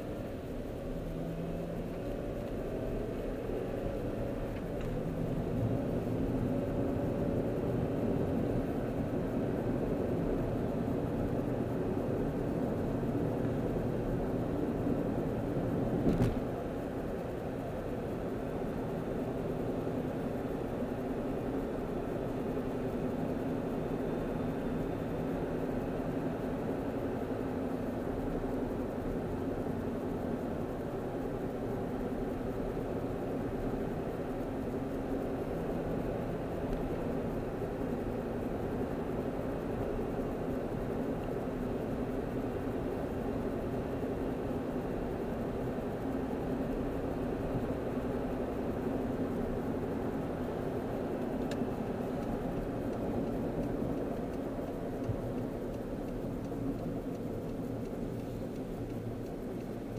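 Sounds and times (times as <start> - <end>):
car cabin road noise: 0.0 - 59.9.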